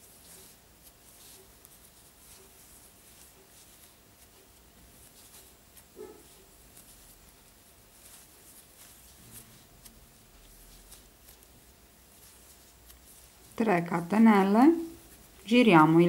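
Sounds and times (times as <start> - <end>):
yarn and crochet hook rustling: 0.0 - 16.0.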